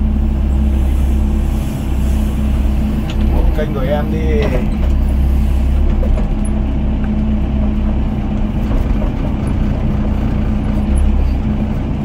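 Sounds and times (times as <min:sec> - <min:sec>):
excavator diesel engine droning: 0:00.0 - 0:12.0.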